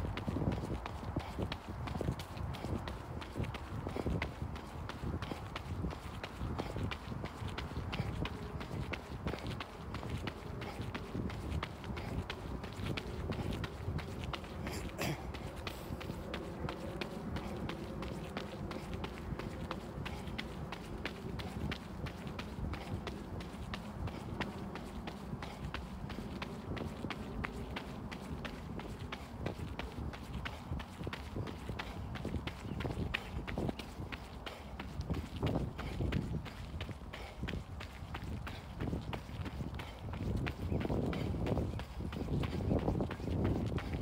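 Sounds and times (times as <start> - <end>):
running footsteps on gravel: 0.0 - 44.0.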